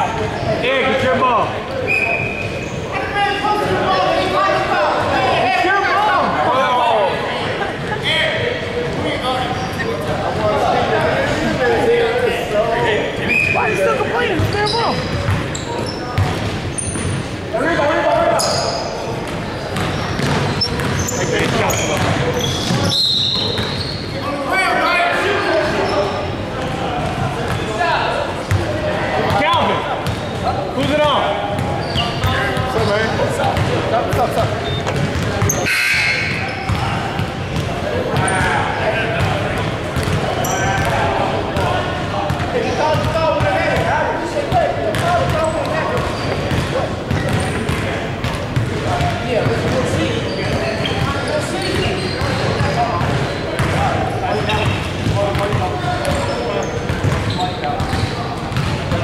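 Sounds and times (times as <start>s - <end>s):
players' voices echoing in gym: 0.0s - 59.0s
basketball bouncing on hardwood: 19.8s - 22.8s.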